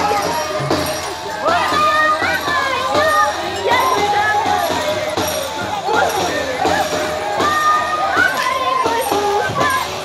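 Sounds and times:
crowd noise: 0.0 - 10.0
high voices singing together: 0.0 - 10.0.

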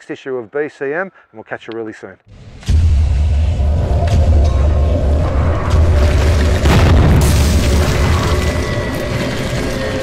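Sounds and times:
deep sustained rumble: 2.6 - 9.9
wall bursting boom and crash: 5.8 - 8.8.

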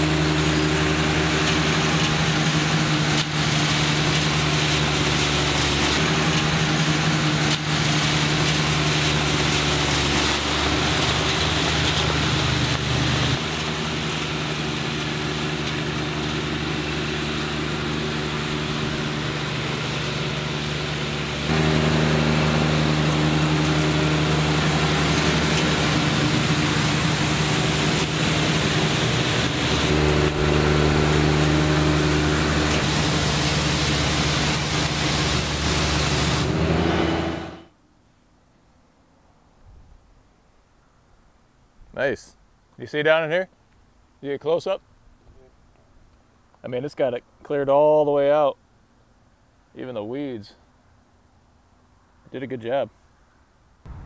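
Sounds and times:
brush sweeping gravel: 0.0 - 37.6
diesel tractor engine running: 0.0 - 37.7.

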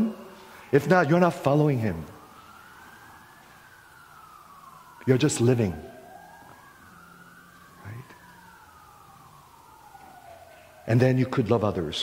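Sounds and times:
faint siren wailing: 0.0 - 12.0.

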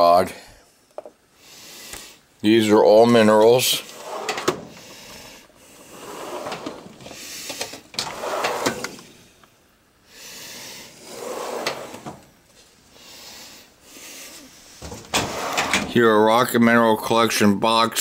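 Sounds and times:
metal drawers sliding on runners: 3.8 - 9.2, 11.0 - 12.3, 14.8 - 16.0.

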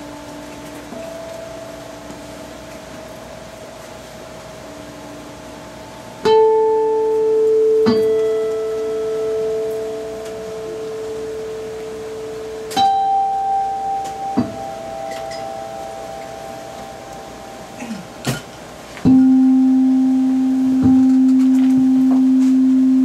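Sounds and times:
guitar plucks ringing: 0.0 - 23.0.

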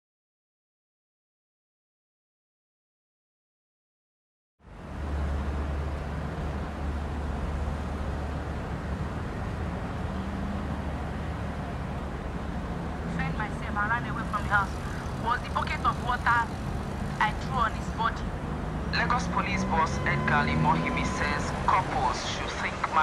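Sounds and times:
vehicle engines hum in traffic: 4.6 - 23.0
people talking on radio: 13.1 - 23.0.

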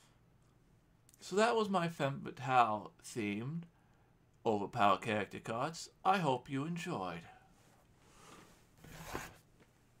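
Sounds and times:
cardboard cards rustling and scraping: 8.8 - 9.6.

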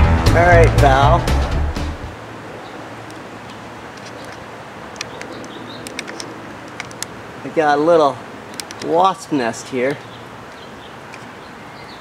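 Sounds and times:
light clicks: 3.0 - 7.2, 8.5 - 9.0
faint bird calls: 4.0 - 6.4, 9.9 - 12.0.

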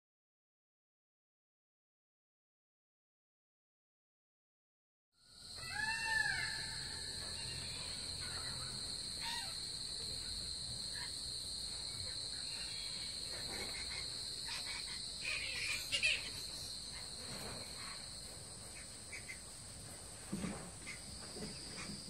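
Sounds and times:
insect chorus drone: 5.2 - 22.0
bird cawing: 5.5 - 9.6.

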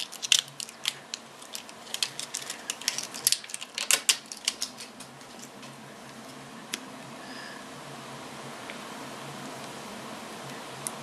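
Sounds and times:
plastic packaging clicking and crackling: 0.0 - 5.5.

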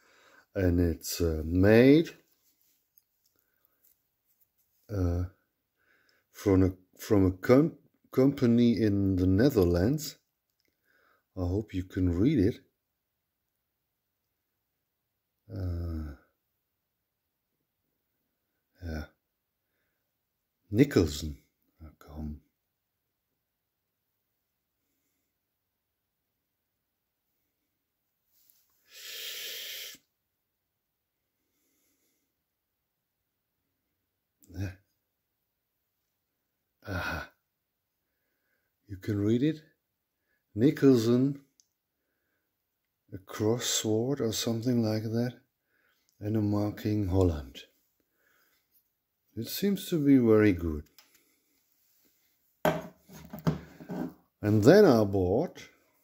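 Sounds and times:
person breathing into microphone: 28.8 - 30.0
metal rasp knocking on wooden table: 52.7 - 54.2.

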